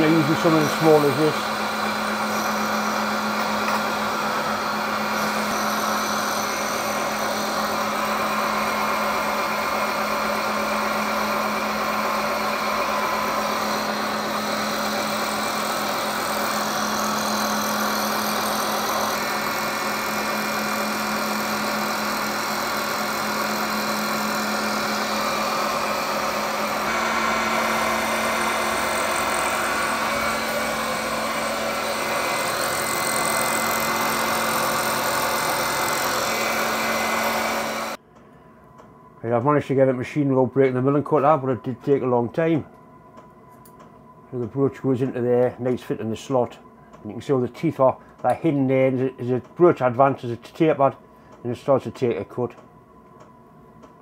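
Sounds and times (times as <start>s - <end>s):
milling machine spindle hum: 0.0s - 38.0s.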